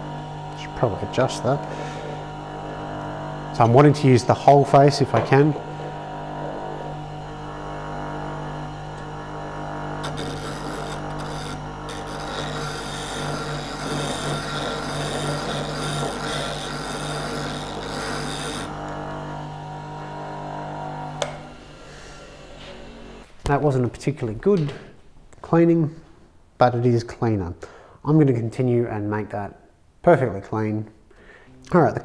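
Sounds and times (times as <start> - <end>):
bench grinder humming: 0.0 - 23.3
dressing bar scraping grinder wheel: 0.0 - 23.3.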